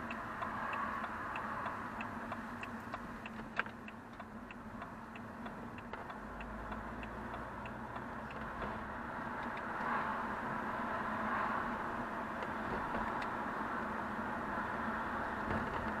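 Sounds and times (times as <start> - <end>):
car turn indicator ticking: 0.0 - 9.9
engine and tyre noise: 0.0 - 16.0.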